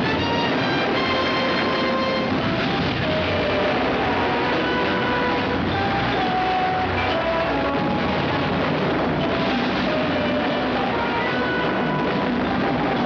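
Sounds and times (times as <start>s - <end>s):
orchestral music: 0.0s - 13.0s.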